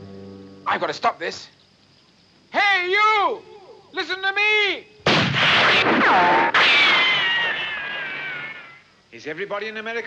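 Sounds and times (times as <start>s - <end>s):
rifle shots: 5.1s - 7.6s
bullet ricochet whines: 5.1s - 8.8s.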